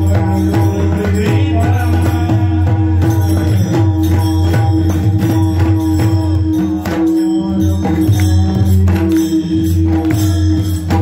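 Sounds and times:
barrel drums playing: 0.0 - 11.0.

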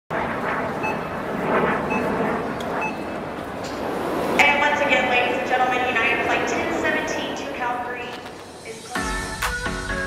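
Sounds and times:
jet engines running: 0.1 - 10.0.

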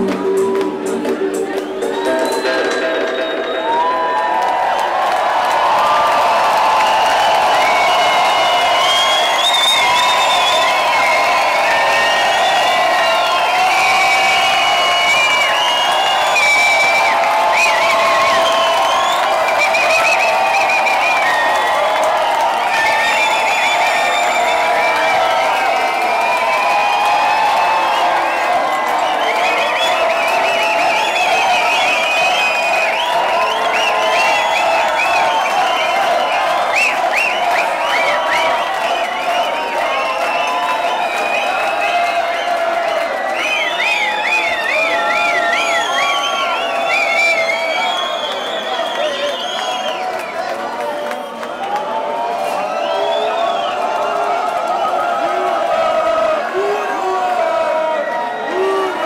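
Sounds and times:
techno music from club speakers: 0.0 - 4.0
crowd cheering and whooping: 0.0 - 59.0.

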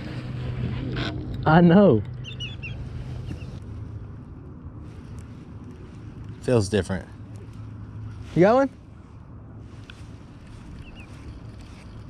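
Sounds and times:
steady low hum: 0.0 - 12.0
high bird chirps: 2.1 - 3.6, 10.8 - 11.3.

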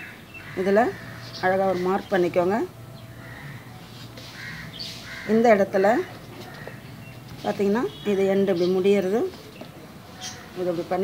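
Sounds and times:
harsh bird calls: 0.0 - 2.3, 3.0 - 11.0
low steady outdoor hum: 0.0 - 11.0.

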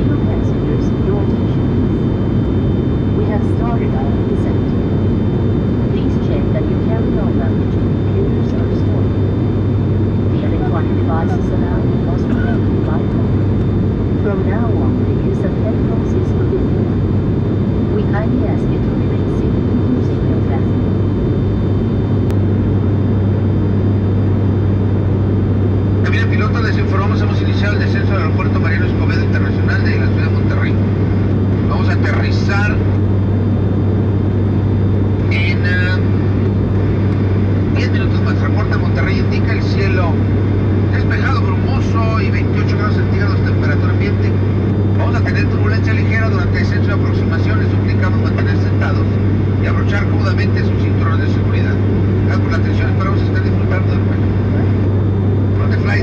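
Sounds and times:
voices talking: 0.0 - 21.0, 25.9 - 33.9, 34.7 - 56.0
turboprop engine drone: 0.0 - 56.0.

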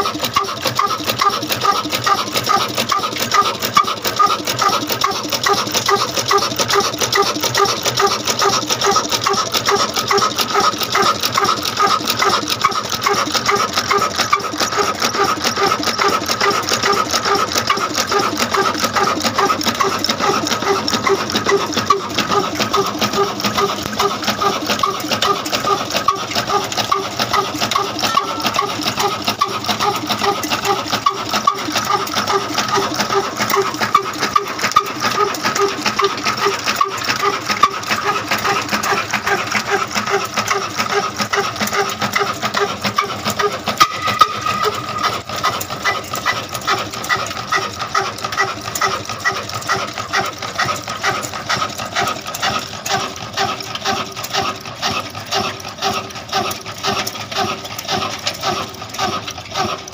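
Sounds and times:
stationary diesel engine running: 0.0 - 59.9.

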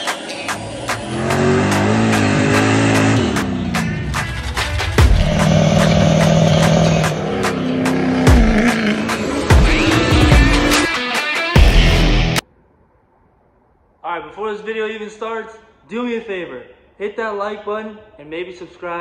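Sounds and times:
music with a steady beat: 0.0 - 12.4
diesel engine revving: 0.2 - 10.9.

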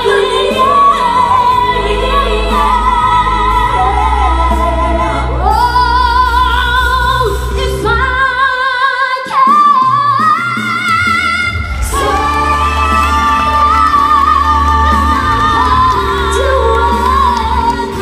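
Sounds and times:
women singing in harmony: 0.0 - 18.0.

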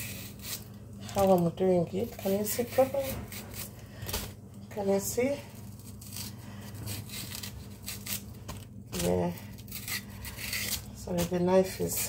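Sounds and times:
knife scraping banana peel: 0.0 - 1.4, 2.0 - 3.8, 5.8 - 12.0.

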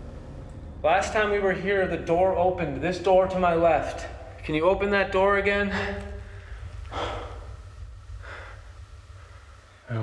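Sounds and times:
low steady hum: 0.0 - 10.0
soft breath: 5.7 - 10.0.

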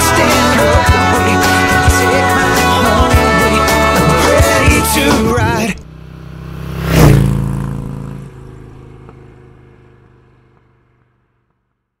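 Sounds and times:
vehicle engine drone and whoosh: 0.0 - 11.9.

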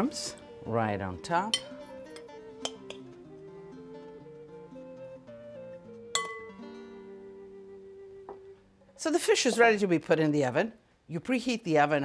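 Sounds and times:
plucked-string melody: 0.0 - 8.6.

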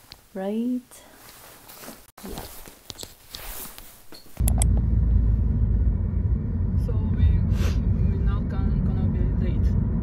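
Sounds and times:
car rumble from inside cabin: 4.4 - 10.0.

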